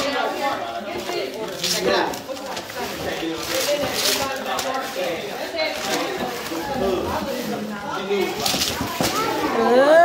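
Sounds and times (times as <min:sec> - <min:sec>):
wrapping paper tearing and rustling: 0:00.0 - 0:09.7.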